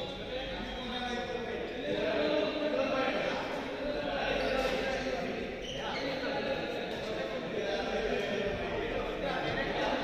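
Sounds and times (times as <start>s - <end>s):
indistinct echoing voices: 0.0s - 10.0s.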